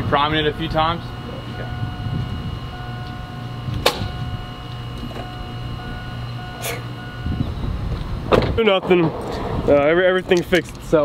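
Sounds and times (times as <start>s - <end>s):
fuel pump whining: 0.0s - 9.9s
ignition click: 2.8s - 6.5s.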